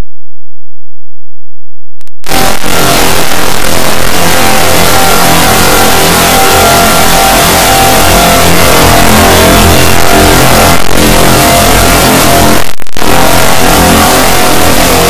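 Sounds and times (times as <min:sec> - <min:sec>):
distorted overlapping music: 0:02.2 - 0:15.0.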